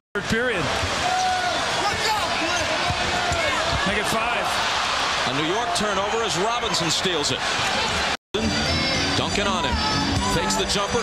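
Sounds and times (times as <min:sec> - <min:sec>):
arena crowd noise: 0:00.2 - 0:11.0.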